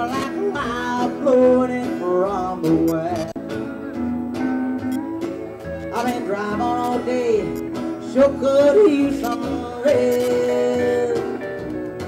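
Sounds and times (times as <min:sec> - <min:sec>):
country band music: 0:00.0 - 0:12.0.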